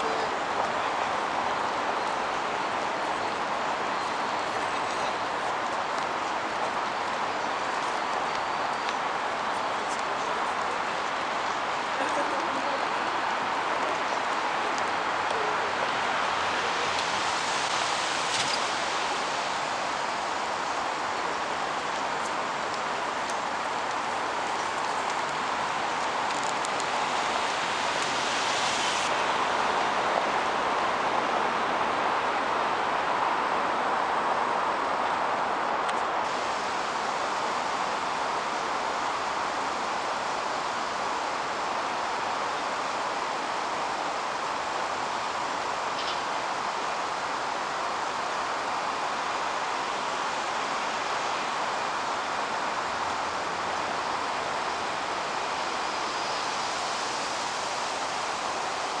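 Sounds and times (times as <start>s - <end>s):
city road traffic hiss: 0.0s - 59.0s.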